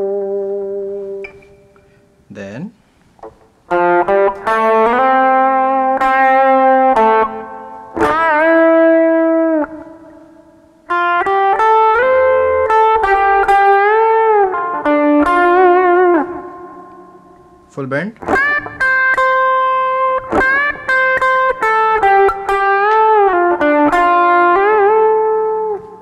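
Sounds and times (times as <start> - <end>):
electric guitar solo melody: 0.0 - 1.8, 3.7 - 17.6, 18.2 - 26.0.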